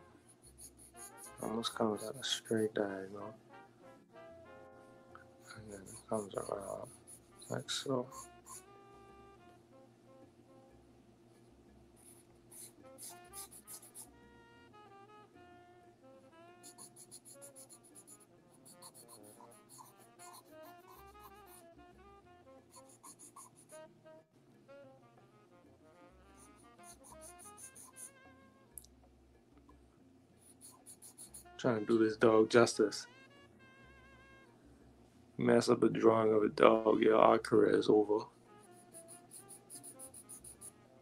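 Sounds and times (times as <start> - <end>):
pencil scratching on paper: 0.0 - 2.8, 5.4 - 8.7, 12.0 - 14.1, 16.6 - 21.7, 22.7 - 23.8, 26.3 - 28.2, 30.4 - 31.6, 38.6 - 40.8
faint background music: 0.0 - 41.0.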